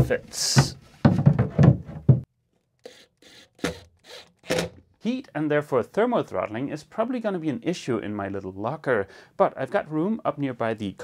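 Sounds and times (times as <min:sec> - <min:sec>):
panel rubbing and knocking: 0:00.0 - 0:02.3.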